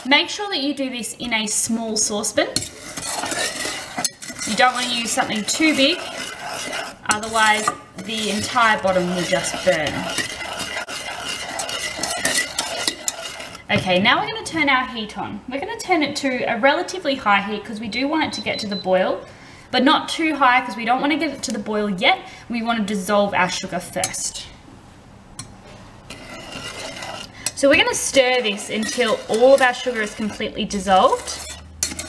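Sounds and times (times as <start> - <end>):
wooden spoon scraping saucepan: 0.0 - 14.6, 25.6 - 32.0.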